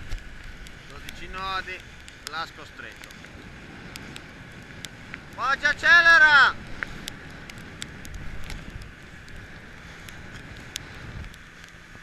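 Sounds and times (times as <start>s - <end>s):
sharp ticks: 0.0s - 5.9s, 6.6s - 11.8s
motor boat running: 0.0s - 12.0s
wind rumbling on microphone: 0.0s - 12.0s.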